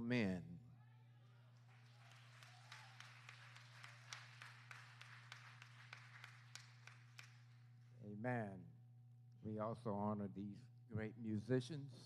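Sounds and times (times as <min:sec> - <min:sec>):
scattered applause: 0:01.2 - 0:07.9
steady low hum: 0:03.3 - 0:12.0.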